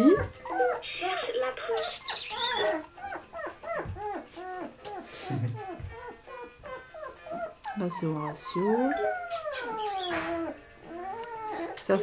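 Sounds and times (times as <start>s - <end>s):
puppies whining and yelping: 0.0s - 12.0s.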